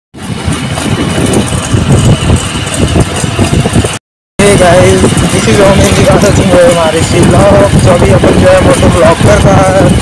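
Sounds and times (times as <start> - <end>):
motorcycle engine rumbling: 0.2 - 10.0.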